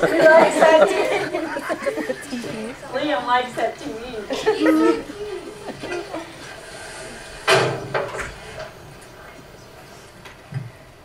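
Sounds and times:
faint voices: 0.0s - 7.5s
room noise hiss: 0.0s - 11.0s.

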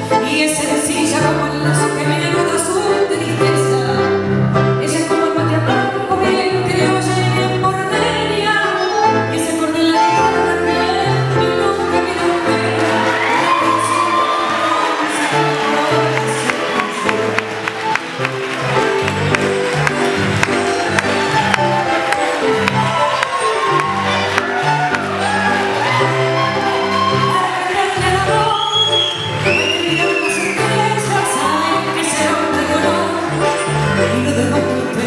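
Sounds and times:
person singing: 0.0s - 17.5s, 20.4s - 35.0s
tango orchestra playing: 0.0s - 35.0s.

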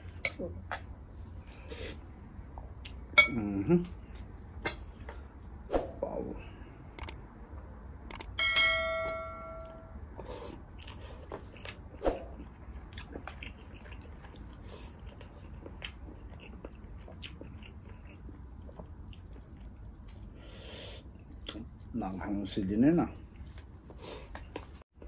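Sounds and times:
bright bell-like ding: 8.4s - 10.0s
close-miked chewing: 10.2s - 24.8s.

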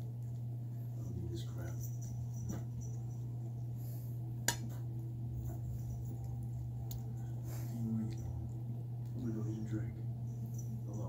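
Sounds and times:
cat chewing and licking: 0.0s - 11.0s
low hum: 0.0s - 11.0s.

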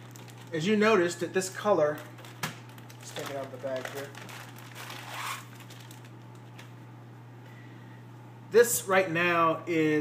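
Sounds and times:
plastic bag crinkling: 0.0s - 6.8s.

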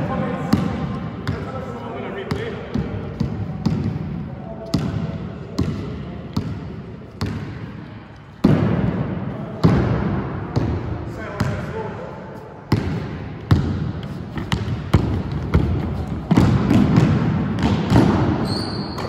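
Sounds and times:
basketball bouncing on wooden floor: 12.7s - 19.0s.

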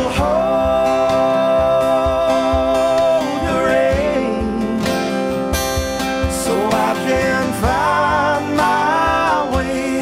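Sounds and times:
person singing: 0.0s - 5.3s, 6.4s - 10.0s
acoustic guitars strumming: 0.0s - 10.0s.

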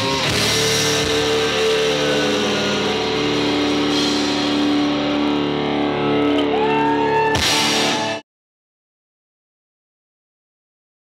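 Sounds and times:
distorted electric guitar long notes: 0.0s - 8.2s
live rock band playing: 0.0s - 8.2s.

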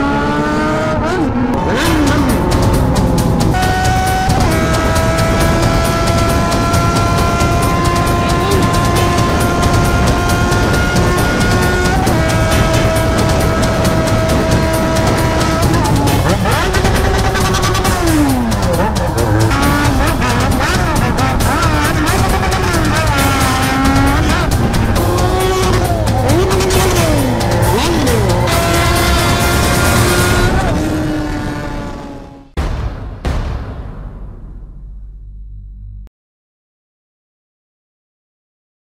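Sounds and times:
motorcycle engine revving: 0.0s - 32.6s.

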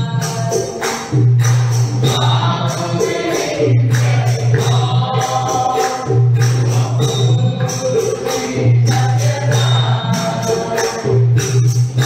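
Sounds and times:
jingling hand percussion: 0.0s - 12.0s
group devotional singing: 2.0s - 11.4s.

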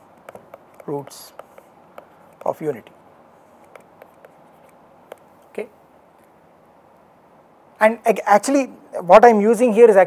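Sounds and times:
stylus tapping on tablet screen: 0.0s - 2.6s, 3.6s - 5.3s.

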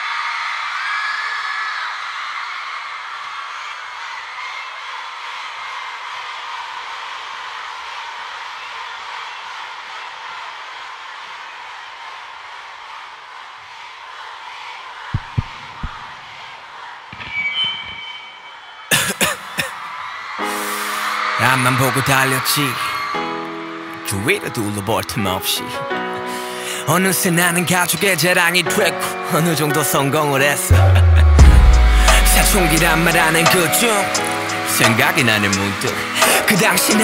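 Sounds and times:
concert crowd cheering and screaming: 0.0s - 24.8s, 30.6s - 37.0s
low thumps: 15.1s - 16.5s
music beat: 15.2s - 16.4s, 30.7s - 37.0s
high shouts: 15.2s - 23.4s.

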